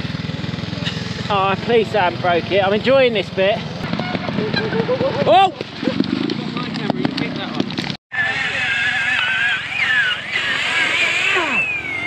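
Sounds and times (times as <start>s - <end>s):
motorcycle revving: 0.0s - 12.0s.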